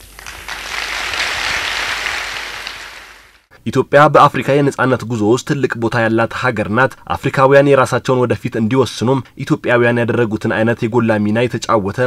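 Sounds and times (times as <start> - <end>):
large audience applauding: 0.0 - 3.5.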